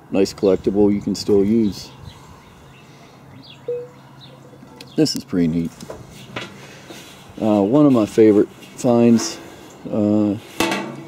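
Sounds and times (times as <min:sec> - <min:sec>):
bird low call: 0:01.6 - 0:05.1
faint high bird chirps: 0:01.7 - 0:05.2.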